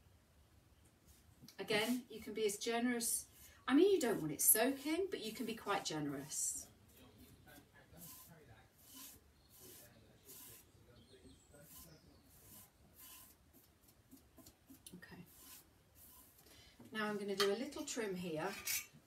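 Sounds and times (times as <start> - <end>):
soft brush swishing strokes: 1.0 - 2.2, 3.8 - 10.8, 11.5 - 16.4.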